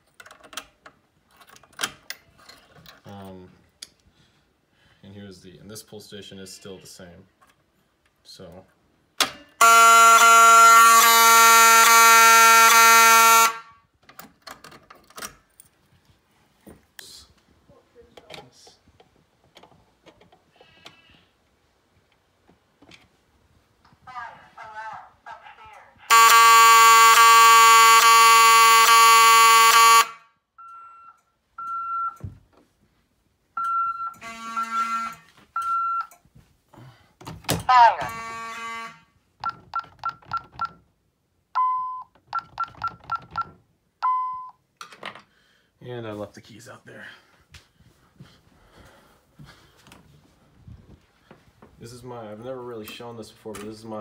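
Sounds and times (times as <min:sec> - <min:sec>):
fire alarm horn buzzing: 0:09.6 - 0:13.8, 0:26.1 - 0:30.4, 0:34.1 - 0:35.3, 0:37.7 - 0:39.2
short high-pitched beeps: 0:41.6 - 0:44.6.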